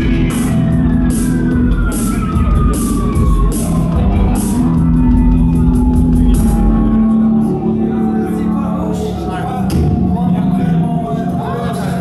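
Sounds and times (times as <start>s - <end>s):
cymbals: 0.0s - 7.9s
rock band playing: 0.0s - 8.4s
bass holding a low note: 0.0s - 12.0s.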